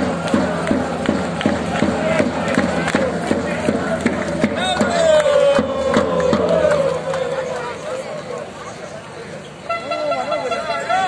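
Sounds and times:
crowd shouting: 0:01.7 - 0:08.8.

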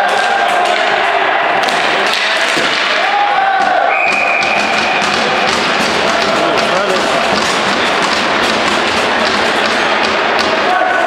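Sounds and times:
sticks and ball knocking on floor: 0:01.6 - 0:11.0
sharp thumps: 0:04.0 - 0:10.7.

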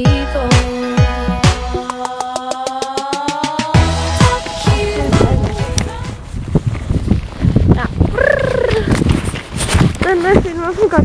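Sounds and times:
hooves thudding in snow: 0:08.9 - 0:11.0.

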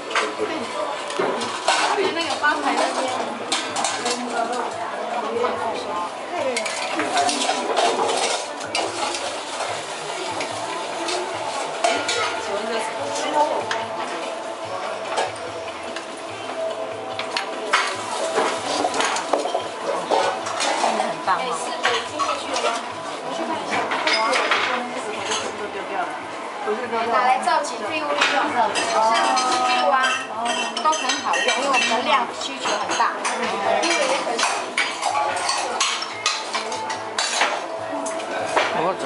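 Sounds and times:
broth boiling and bubbling: 0:00.0 - 0:24.2
metal utensils clinking on pot: 0:01.1 - 0:04.8, 0:06.5 - 0:14.0, 0:17.2 - 0:25.6, 0:28.1 - 0:38.8.

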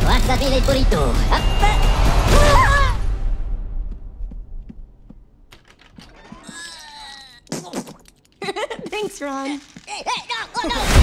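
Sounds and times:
door hinges creaking: 0:05.5 - 0:07.5.

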